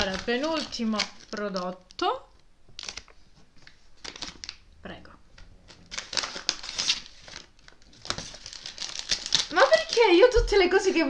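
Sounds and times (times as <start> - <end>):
gift bag crinkling: 0.0 - 2.2, 5.6 - 11.0.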